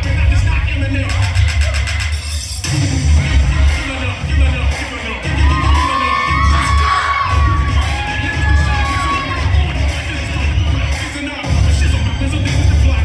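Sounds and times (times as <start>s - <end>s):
hip hop music with heavy bass: 0.0s - 13.0s
high-pitched shouts: 5.2s - 10.4s
audience cheering and screaming: 5.2s - 12.6s.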